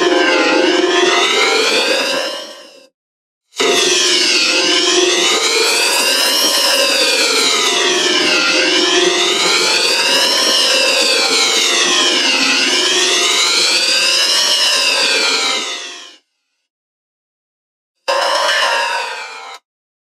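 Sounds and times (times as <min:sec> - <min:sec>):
wailing pitch-sliding logo sound: 0:03.6 - 0:15.8.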